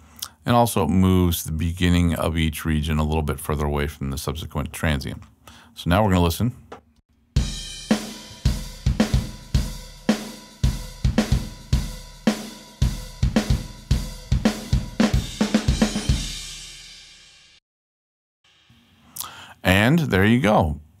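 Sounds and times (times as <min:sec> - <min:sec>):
rock drum kit beat: 0:07.4 - 0:17.4.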